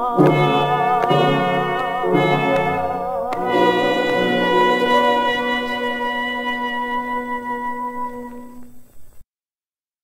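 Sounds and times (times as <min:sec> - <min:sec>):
orchestral pop song held chord: 0:00.0 - 0:08.7.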